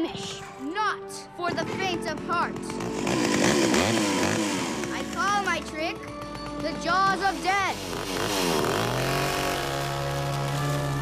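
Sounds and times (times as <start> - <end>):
chainsaw pull-started and revving: 2.0 - 11.0.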